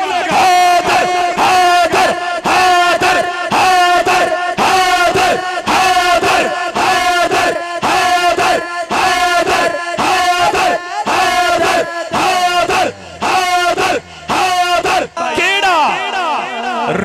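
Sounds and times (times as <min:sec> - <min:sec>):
crowd chanting in unison: 0:00.0 - 0:17.0
man's amplified voice: 0:00.0 - 0:17.0.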